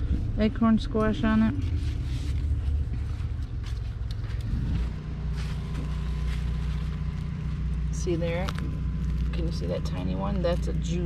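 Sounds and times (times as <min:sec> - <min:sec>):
motor hum: 0:00.0 - 0:11.0
leaves rustling and clicking: 0:01.6 - 0:11.0.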